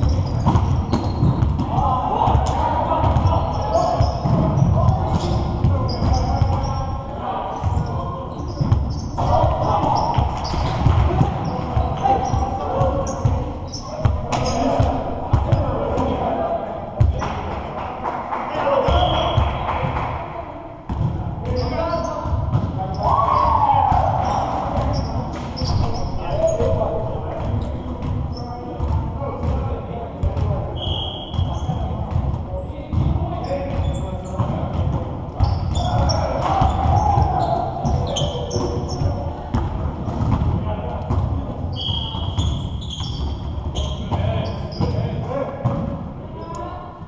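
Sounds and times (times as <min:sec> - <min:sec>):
basketballs bouncing on hardwood: 0:00.0 - 0:02.4, 0:03.0 - 0:06.7, 0:32.1 - 0:41.4
players' voices calling: 0:00.0 - 0:20.3.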